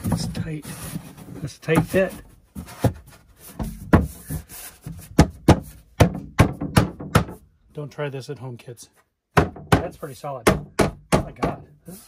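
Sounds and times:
wooden knocks and thunks: 0.0s - 7.5s, 9.3s - 11.7s.

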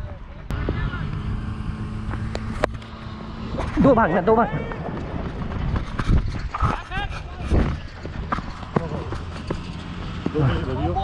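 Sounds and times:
steady low rumble: 0.4s - 11.0s.

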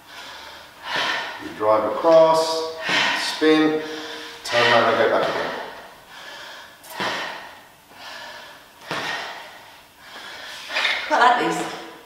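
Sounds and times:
person exhaling forcefully: 5.2s - 9.5s.

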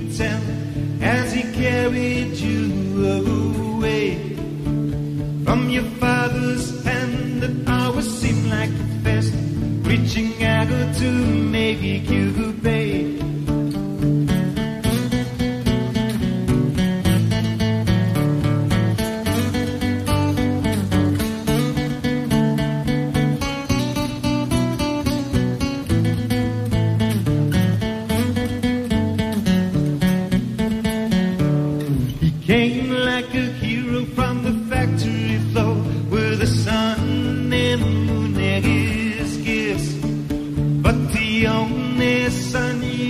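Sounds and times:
acoustic guitar strumming chords: 0.0s - 43.0s.

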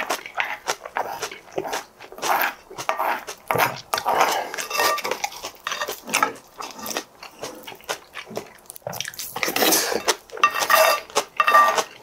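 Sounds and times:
wet chewing: 0.0s - 12.0s
wooden spoon scraping ceramic bowl: 2.3s - 7.0s, 9.4s - 12.0s
squeaky scrape: 9.6s - 11.8s.

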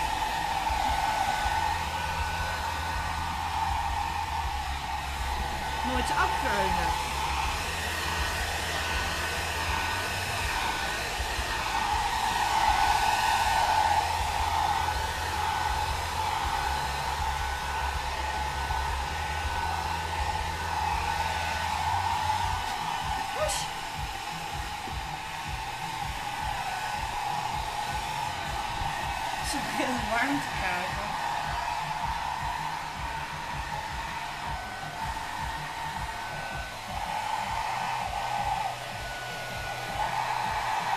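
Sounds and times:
hair dryer running: 0.0s - 40.9s.

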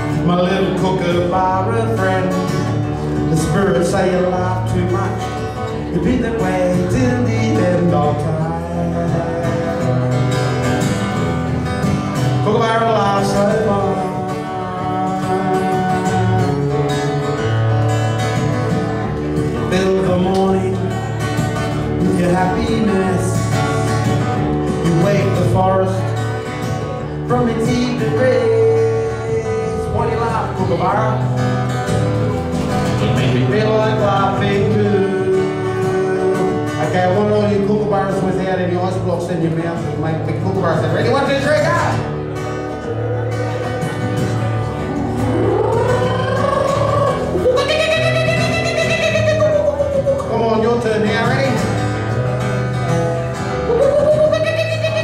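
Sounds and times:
acoustic guitar playing chords: 0.0s - 55.0s.

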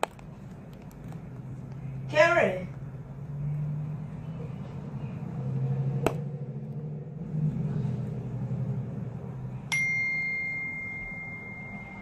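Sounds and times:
low steady hum: 0.0s - 12.0s
timer bell ding: 9.7s - 12.0s.

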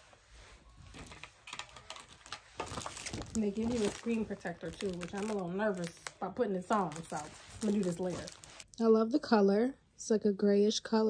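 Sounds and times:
light clicks and taps of packaging: 0.9s - 8.7s.

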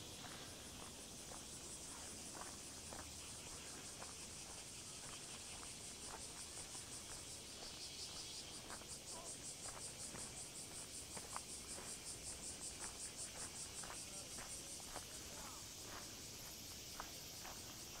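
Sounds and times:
cicadas pulsing chorus: 0.0s - 18.0s
faint footsteps on path: 0.0s - 18.0s.

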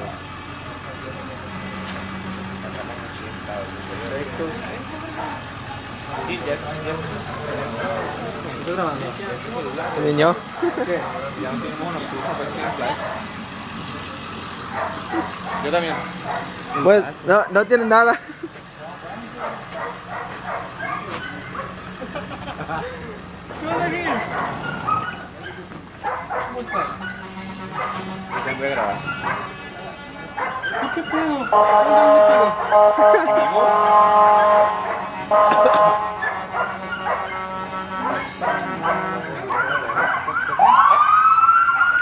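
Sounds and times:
dog barking: 12.2s - 13.3s, 14.7s - 17.6s, 19.4s - 21.8s, 24.1s - 29.6s, 30.3s - 31.9s, 34.4s - 35.6s, 36.2s - 37.5s, 38.1s - 40.4s.

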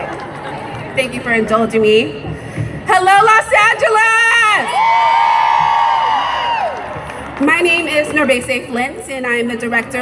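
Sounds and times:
whooping shouts over loudspeaker: 4.5s - 6.9s
crowd cheering: 4.6s - 7.5s.

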